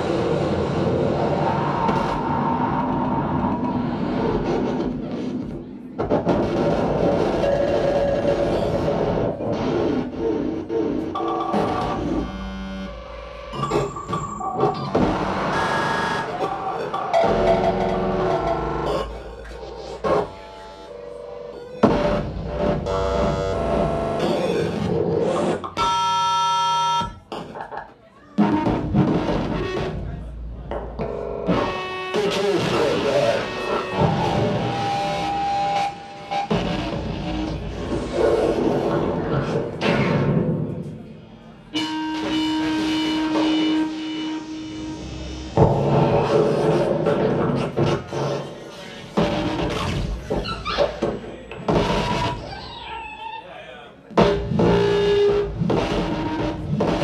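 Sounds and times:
dense layered electronic music: 0.0 - 27.7, 28.4 - 52.6, 54.1 - 57.0.

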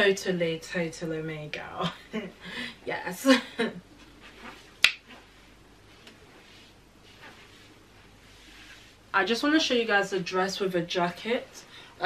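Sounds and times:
finger snap: 4.8 - 5.0.

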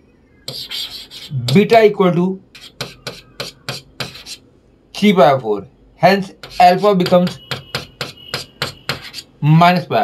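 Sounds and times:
chalk scratching on chalkboard: 0.5 - 1.7, 2.5 - 4.4, 6.3 - 9.4.

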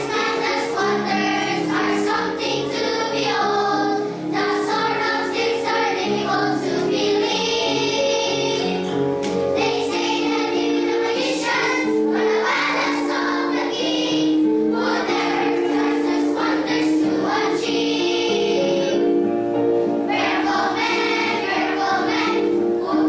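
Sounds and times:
children's choir singing: 0.0 - 23.0.

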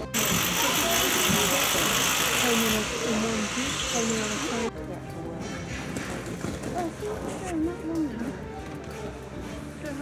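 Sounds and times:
loud mechanical hiss: 0.1 - 4.7
indistinct voices talking: 0.1 - 5.9.

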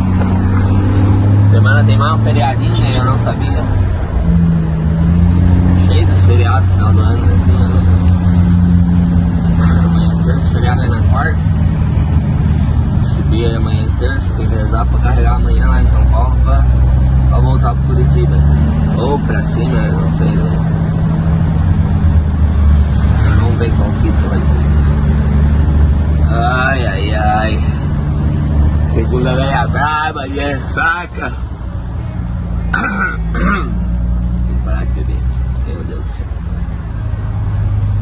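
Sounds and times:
truck engine drone from cab: 0.0 - 38.0.

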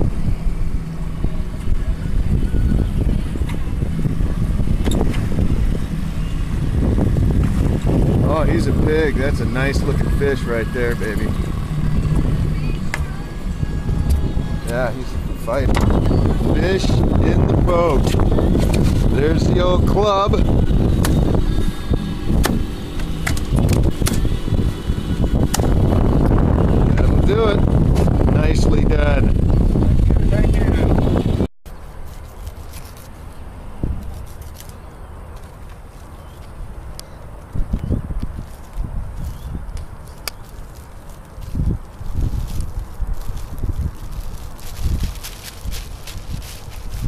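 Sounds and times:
outboard motor hum: 0.0 - 32.2
wind buffeting microphone: 0.0 - 32.2, 32.8 - 47.0
steady low rumble: 0.0 - 47.0.

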